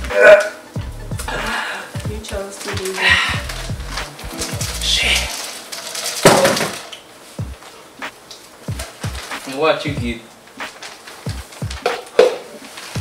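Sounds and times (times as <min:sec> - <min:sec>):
background music with bass line: 0:00.0 - 0:05.4.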